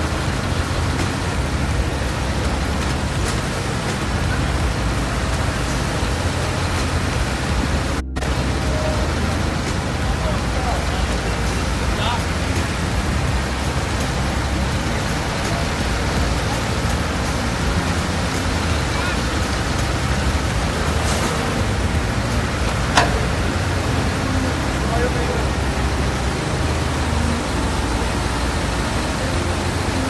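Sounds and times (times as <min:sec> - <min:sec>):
indistinct voices: 0:00.0 - 0:30.0
vehicle engines rumbling: 0:00.0 - 0:30.0.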